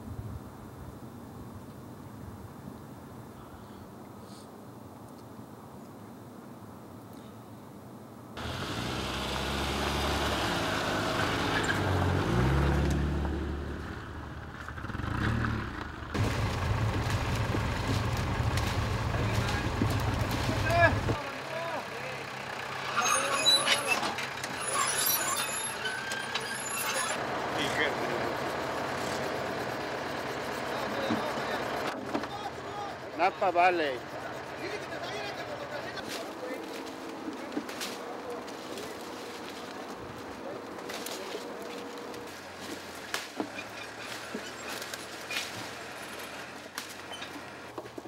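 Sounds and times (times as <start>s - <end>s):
tractor engine droning: 8.4s - 48.0s.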